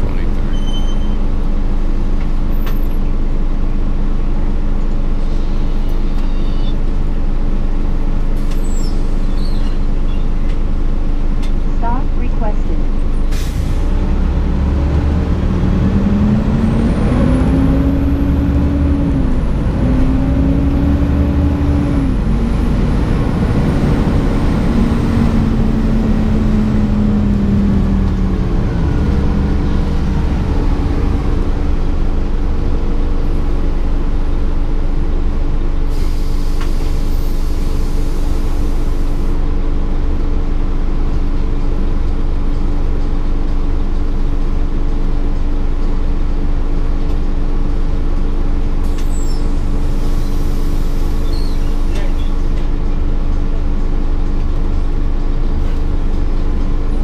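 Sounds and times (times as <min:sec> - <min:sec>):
bus engine drone: 0:00.0 - 0:57.0
drivetrain whine: 0:00.0 - 0:57.0.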